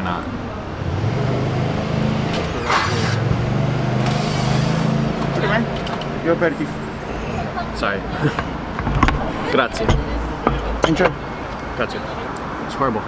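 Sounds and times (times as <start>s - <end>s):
vehicle engine running: 0.5s - 12.4s.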